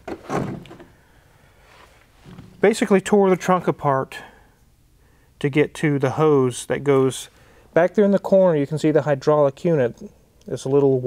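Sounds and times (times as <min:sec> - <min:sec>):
plastic panel scraping and rustling: 0:00.0 - 0:00.9.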